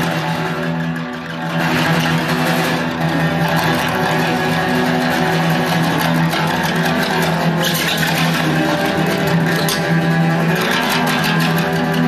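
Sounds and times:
guitars strumming chords: 0:00.0 - 0:12.0.

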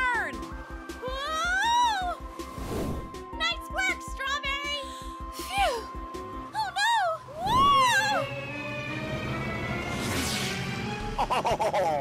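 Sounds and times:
cartoon background music: 0:00.0 - 0:12.0
whoosh: 0:02.5 - 0:03.2, 0:08.9 - 0:11.1
long falling tone: 0:07.3 - 0:11.1.

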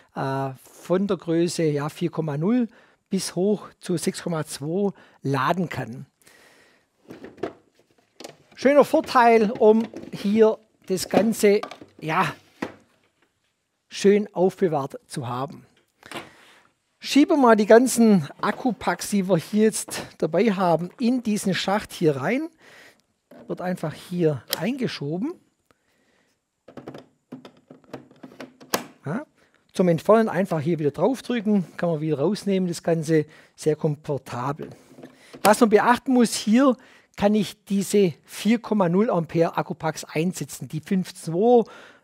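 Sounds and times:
plastic case rustle: 0:07.0 - 0:13.5.

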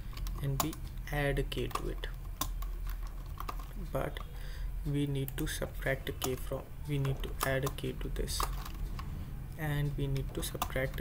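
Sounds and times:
computer keyboard keystrokes: 0:00.1 - 0:00.8, 0:01.6 - 0:04.3, 0:06.2 - 0:09.1, 0:10.4 - 0:11.0.

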